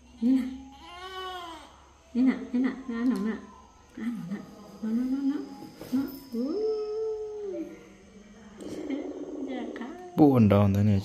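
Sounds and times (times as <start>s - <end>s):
person cooing sing-song notes: 2.4s - 7.8s.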